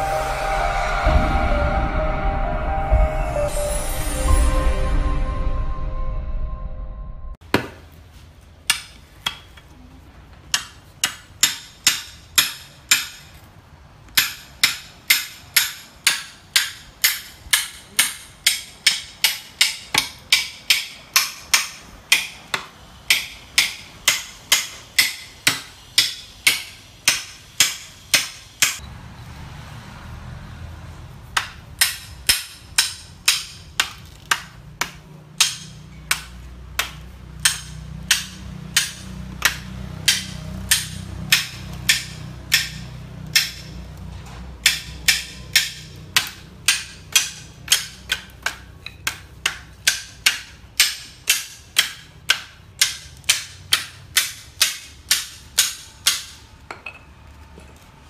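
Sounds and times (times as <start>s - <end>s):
machete chopping bamboo: 31.4s - 43.8s, 44.6s - 56.4s.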